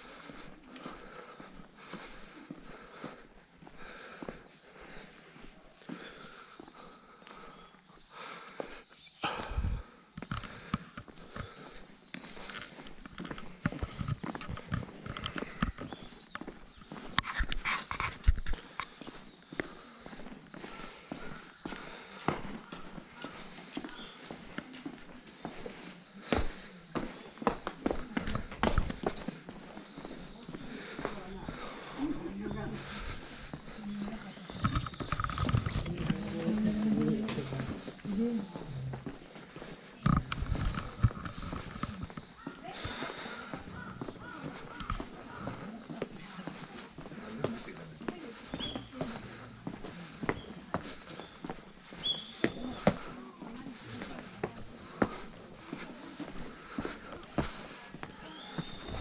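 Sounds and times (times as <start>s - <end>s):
footsteps on stone paving: 0.0s - 59.0s.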